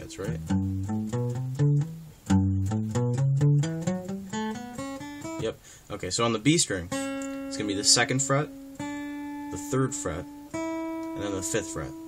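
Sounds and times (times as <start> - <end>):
acoustic guitar scale run: 0.0 - 12.0.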